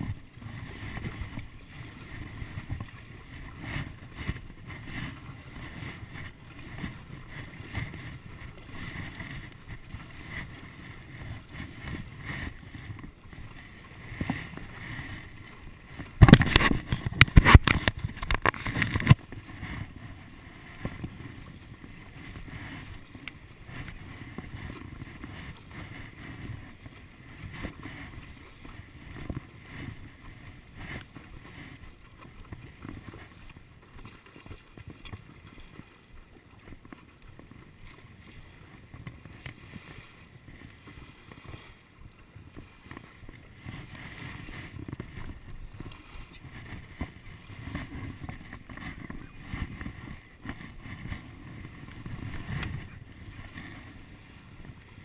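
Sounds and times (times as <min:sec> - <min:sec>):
paddle strokes splashing: 0:00.0 - 0:55.0
water lapping against paddleboard: 0:00.0 - 0:55.0.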